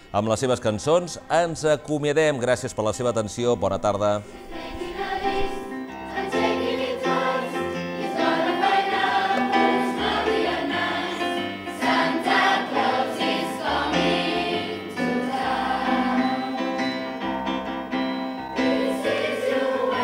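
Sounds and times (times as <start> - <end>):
choir singing in unison: 4.2 - 17.3, 18.5 - 20.0.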